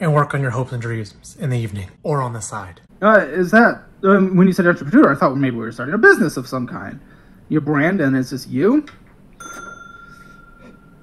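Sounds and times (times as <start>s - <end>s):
bell-like ding: 9.4s - 11.0s.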